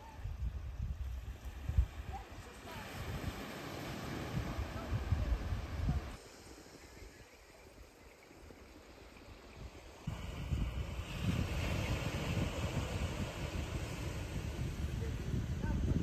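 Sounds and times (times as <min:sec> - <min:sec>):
wind buffeting microphone: 0:00.0 - 0:06.2, 0:09.6 - 0:16.0.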